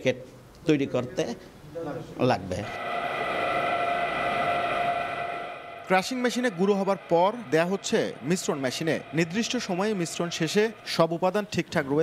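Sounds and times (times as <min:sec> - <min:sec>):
machine whining tones: 0:02.6 - 0:12.0.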